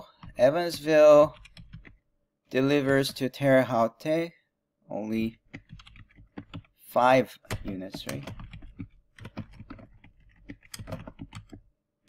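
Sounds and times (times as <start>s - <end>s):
typing on computer keyboard: 0.1s - 2.0s, 5.5s - 6.8s, 7.5s - 11.7s.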